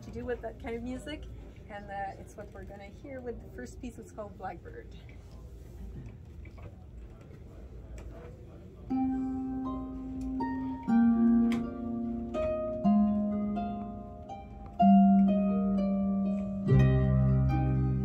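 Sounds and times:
harp playing: 8.9s - 18.0s.

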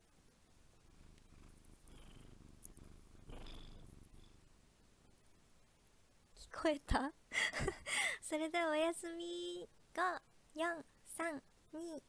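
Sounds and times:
cat purring: 0.0s - 5.4s.

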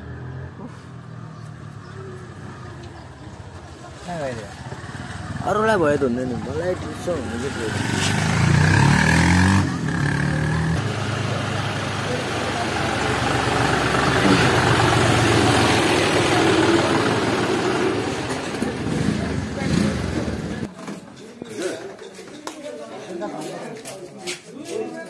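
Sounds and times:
tractor diesel engine running: 10.8s - 20.7s.

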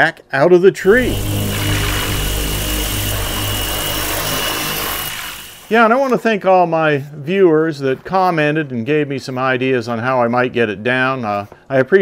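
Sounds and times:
engine-like drone: 0.8s - 5.9s
thin high whine: 0.8s - 6.1s.

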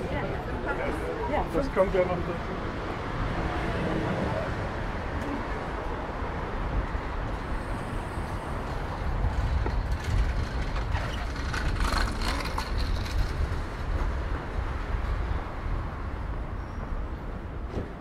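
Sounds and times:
low traffic rumble: 0.0s - 18.0s.

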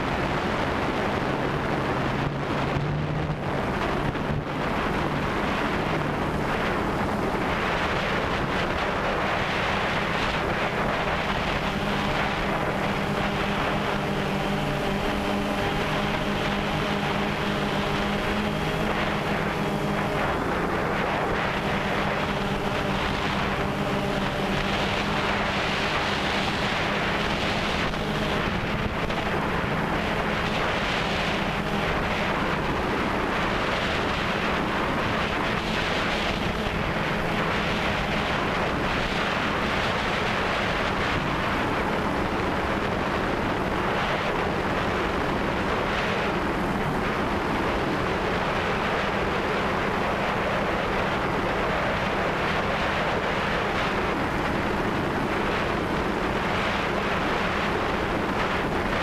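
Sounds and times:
drone propellers humming: 0.0s - 59.0s
wind noise on microphone: 0.0s - 59.0s.

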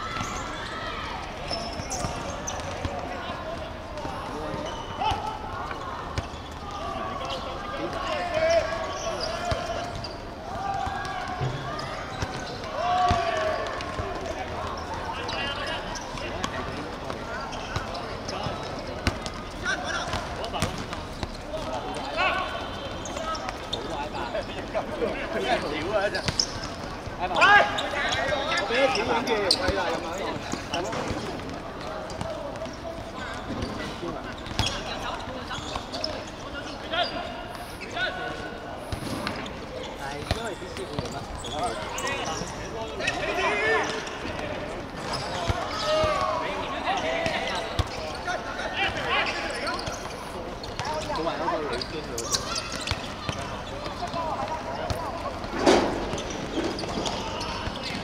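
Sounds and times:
players shouting: 0.0s - 18.6s, 41.4s - 58.0s.

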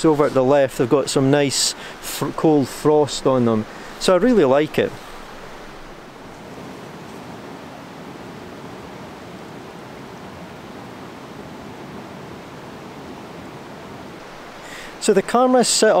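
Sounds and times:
river rushing: 0.0s - 16.0s.

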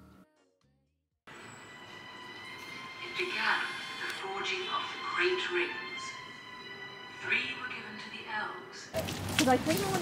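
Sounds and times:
soft sustained music: 1.3s - 8.9s
woman narrating: 7.2s - 10.0s.

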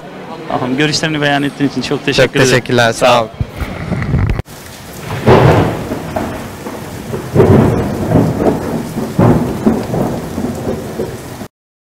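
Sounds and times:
steady rain: 0.0s - 11.5s
thunder rolling: 3.4s - 11.5s.

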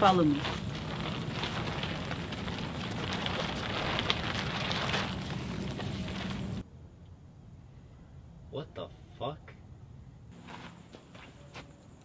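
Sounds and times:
plastic tarp crackling and rustling: 0.0s - 6.6s
steady low hum: 0.0s - 12.0s.

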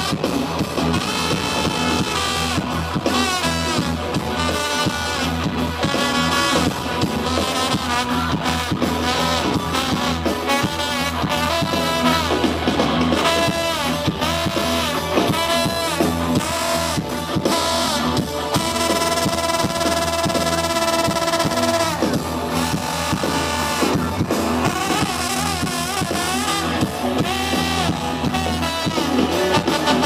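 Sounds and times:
live rock band: 0.0s - 30.0s
trombone solo sliding: 0.0s - 30.0s.

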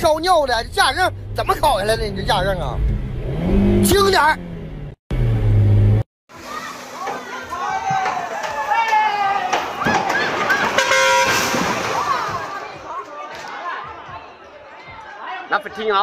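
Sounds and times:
excited voices: 6.4s - 10.8s
short horn toot: 10.8s - 11.5s.

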